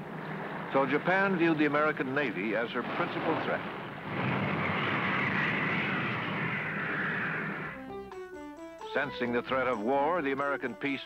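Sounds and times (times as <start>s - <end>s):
engine-like drone: 0.0s - 7.9s.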